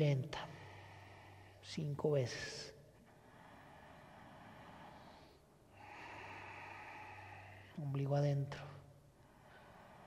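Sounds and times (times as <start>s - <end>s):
slow breathing through the nose: 0.4s - 10.0s.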